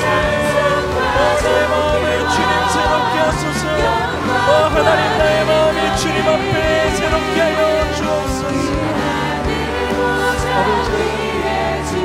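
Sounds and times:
bass notes: 0.0 - 12.0
congregation praying aloud: 0.0 - 12.0
keyboard chords: 0.0 - 12.0.

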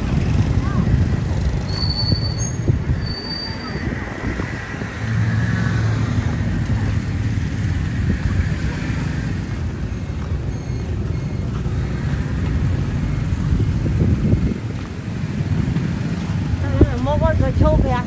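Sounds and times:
traffic engines rumbling: 0.0 - 18.0
high-pitched squeals: 1.6 - 6.2.

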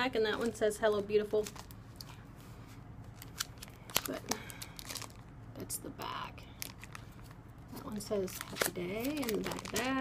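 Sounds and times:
plastic packaging crinkling and clicking: 3.1 - 5.3, 6.6 - 10.0.

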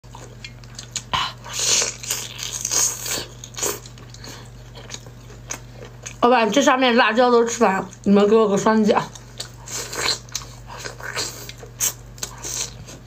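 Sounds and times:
person biting and chewing: 0.1 - 6.2, 9.1 - 13.0.

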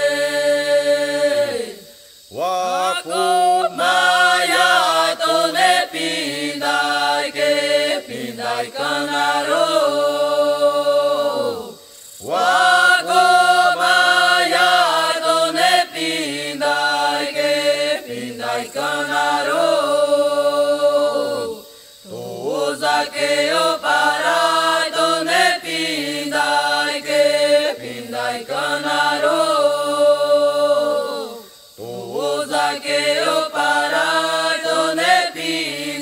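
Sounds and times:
unaccompanied chant singing: 0.0 - 36.0.

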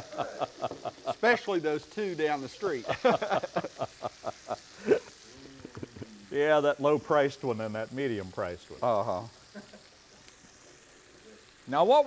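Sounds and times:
man laughing: 0.0 - 1.6, 2.8 - 6.2
fish sizzling in a skillet: 0.0 - 12.0.

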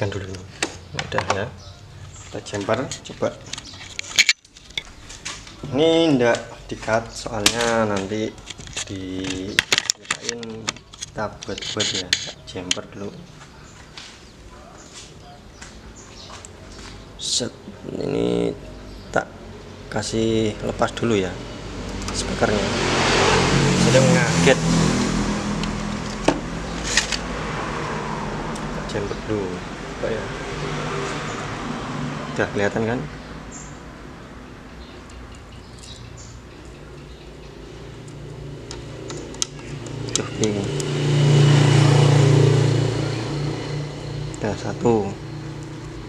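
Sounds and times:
steady background noise: 0.0 - 46.0
sharp clicks of wires and clips: 7.4 - 12.9, 38.0 - 40.9.

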